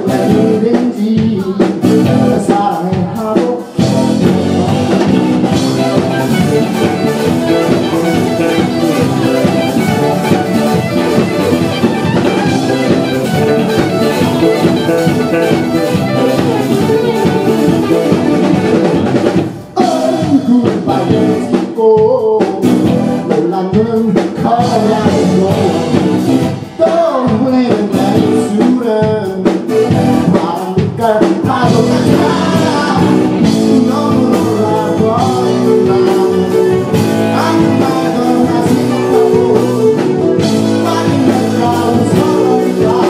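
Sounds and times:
bass guitar: 0.0s - 43.0s
drum kit: 0.0s - 43.0s
electric guitars: 0.0s - 43.0s.

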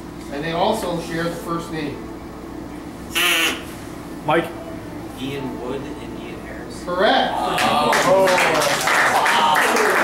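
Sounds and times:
duck call quack: 3.1s - 3.7s.

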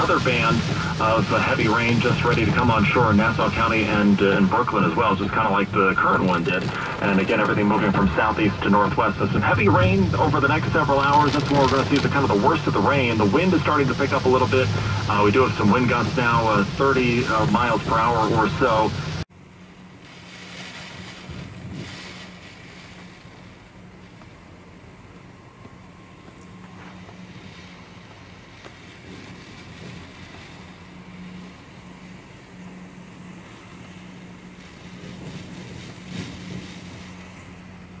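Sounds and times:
steady low hum: 0.0s - 38.0s
wind and rain on window: 0.0s - 38.0s.

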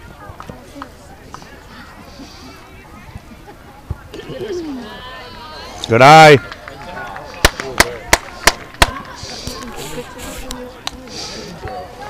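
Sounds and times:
hands clapping: 6.3s - 9.8s.

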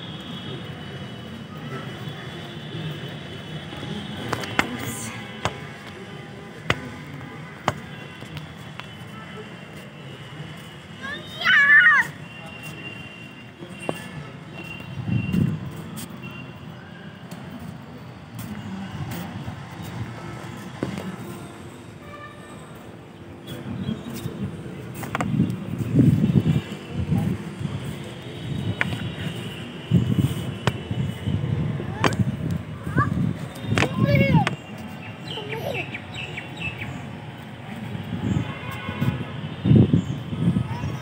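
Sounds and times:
child's high-pitched call: 11.0s - 12.3s, 32.8s - 34.6s, 35.2s - 36.1s, 40.4s - 41.0s
wind buffeting microphone: 23.6s - 34.8s, 37.8s - 41.0s.

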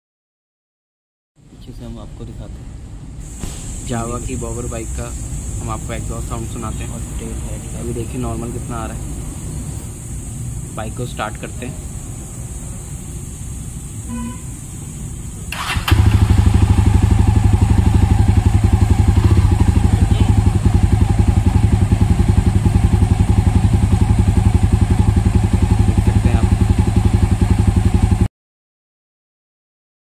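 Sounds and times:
motorcycle engine starting and idling: 15.3s - 28.3s.

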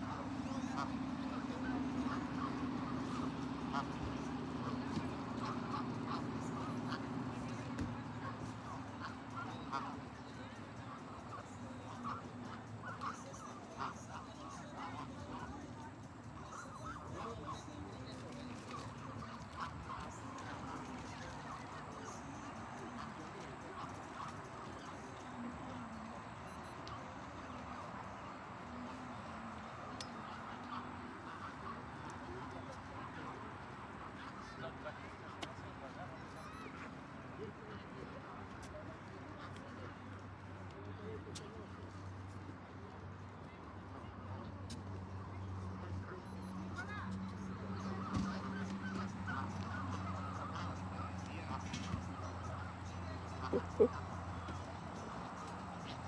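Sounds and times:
geese calling: 0.0s - 36.9s, 45.4s - 56.0s
faint voices: 0.0s - 56.0s
outdoor background noise: 0.0s - 56.0s.

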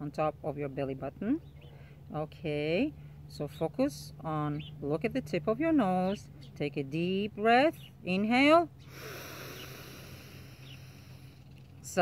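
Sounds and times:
low steady hum: 0.0s - 12.0s
person breathing in deeply: 8.8s - 11.5s.

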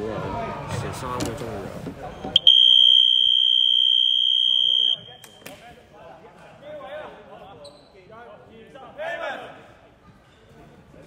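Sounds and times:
basketball game buzzer: 2.4s - 5.0s.

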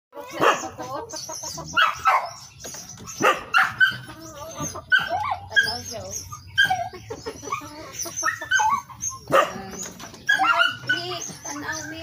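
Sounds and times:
animal cries and whines: 0.2s - 12.0s.

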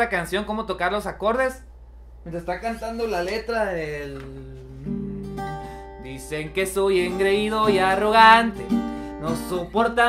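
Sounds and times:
acoustic guitar notes: 3.8s - 10.0s.

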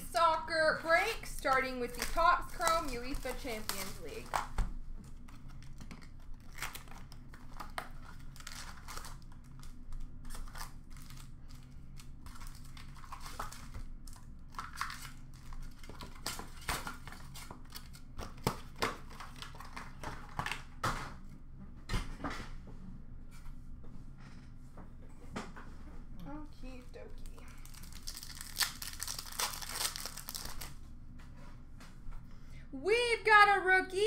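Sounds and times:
card pack wrappers crinkling and tearing: 0.1s - 20.7s, 27.2s - 30.8s.

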